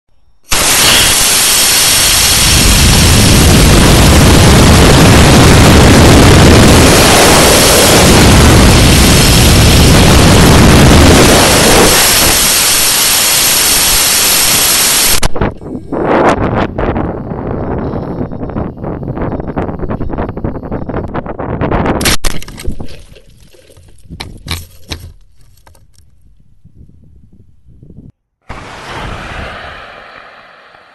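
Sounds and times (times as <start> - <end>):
rocket motor rushing: 0.5 - 15.4, 28.5 - 30.9.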